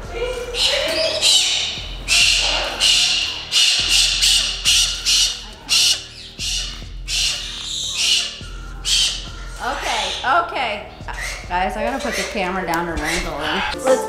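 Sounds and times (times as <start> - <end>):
cockatoo screeching: 0.5 - 13.8.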